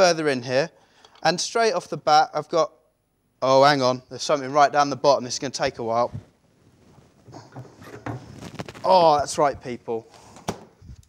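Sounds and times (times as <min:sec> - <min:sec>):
faint rustling: 0:05.8 - 0:11.0.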